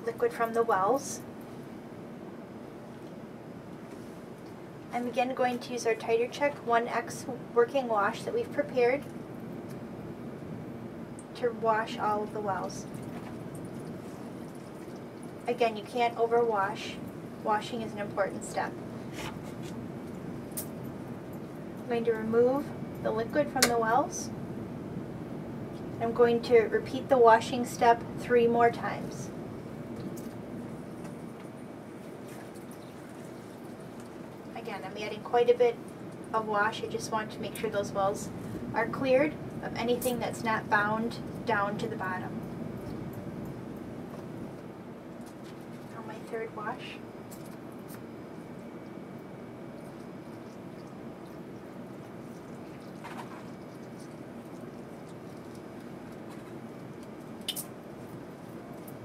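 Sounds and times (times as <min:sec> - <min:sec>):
room hum: 0:00.0 - 0:59.0
steady background hiss: 0:00.0 - 0:59.0.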